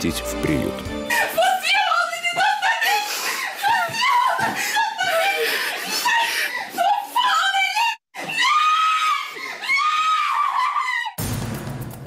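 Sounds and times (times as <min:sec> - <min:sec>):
boys screaming and wailing: 0:01.1 - 0:11.2.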